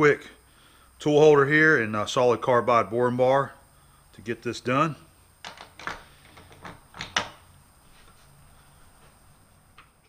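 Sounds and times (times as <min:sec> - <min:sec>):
faint low hum: 0:00.0 - 0:10.0
metallic clicks and knocks: 0:05.4 - 0:07.4.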